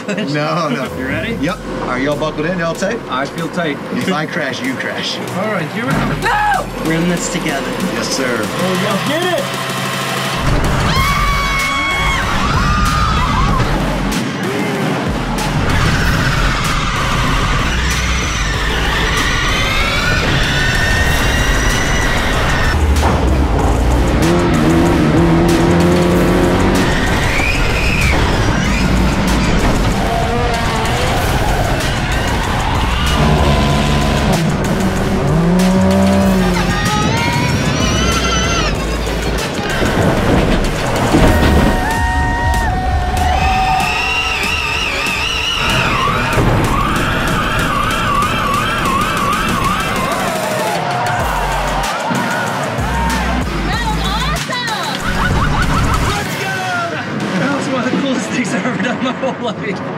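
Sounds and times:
race car engines revving: 0.0 - 59.9
tyres skidding: 0.0 - 59.9
music track: 22.3 - 55.0.

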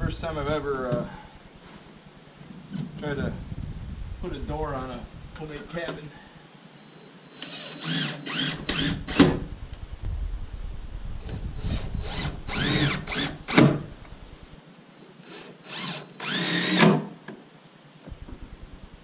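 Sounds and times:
cordless drill driving screws: 7.3 - 9.4, 11.7 - 13.8, 15.2 - 17.0.

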